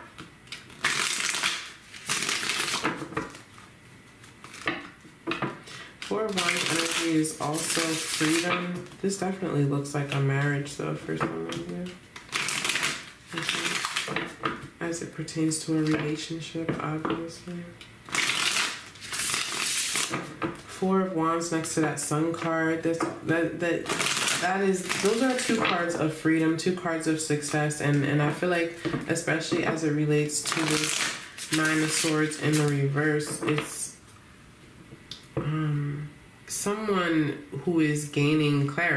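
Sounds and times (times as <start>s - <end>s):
cards being shuffled: 0.0s - 9.4s, 11.0s - 14.7s, 15.4s - 17.3s, 18.1s - 20.8s, 23.8s - 33.8s.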